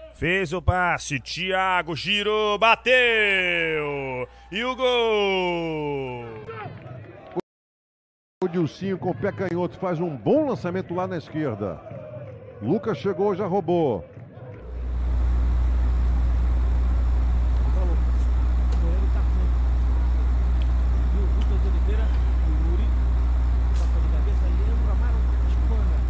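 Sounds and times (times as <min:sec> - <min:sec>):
loud steady low rumble: 0:14.7 - 0:26.0.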